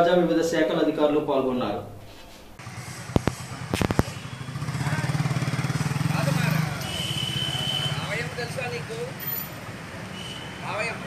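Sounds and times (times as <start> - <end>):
engine putter: 2.6 - 7.4.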